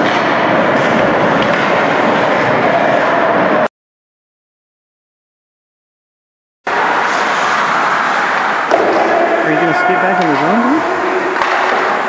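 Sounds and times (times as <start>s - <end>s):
ice rink hiss: 6.7s - 11.0s
man talking: 9.4s - 10.8s.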